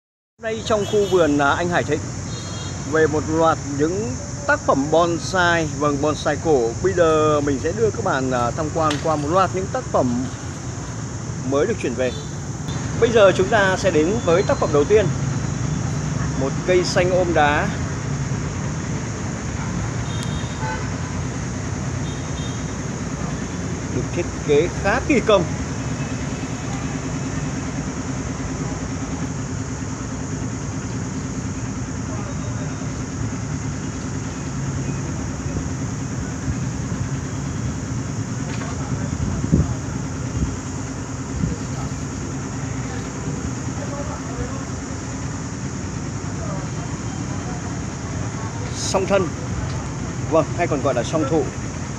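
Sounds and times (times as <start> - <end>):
road traffic rumble: 0.4 - 51.9
faint car horn toot: 0.6 - 1.5
faint voices: 30.4 - 51.9.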